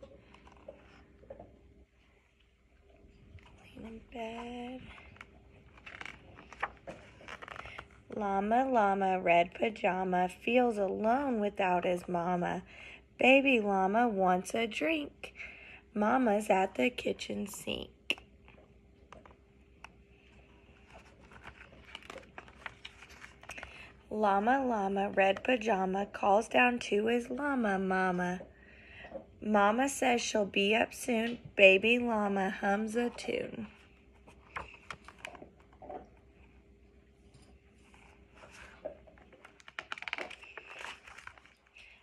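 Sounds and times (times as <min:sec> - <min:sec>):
paper rustling of pages turning: 0:00.0 - 0:01.5, 0:03.4 - 0:08.2, 0:19.1 - 0:24.0, 0:33.0 - 0:35.8, 0:37.3 - 0:42.0
faint steady hum: 0:00.0 - 0:42.0.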